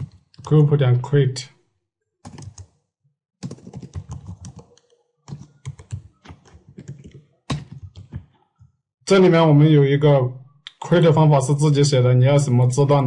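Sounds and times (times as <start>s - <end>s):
typing on computer keyboard: 2.2s - 2.8s, 3.4s - 8.4s.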